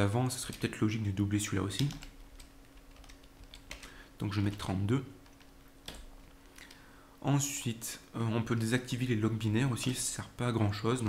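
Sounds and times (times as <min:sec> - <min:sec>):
computer keyboard keystrokes: 0:01.7 - 0:06.8.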